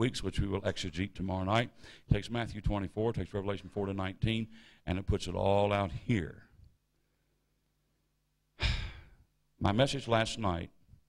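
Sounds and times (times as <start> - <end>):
man sighing into microphone: 8.6 - 9.2.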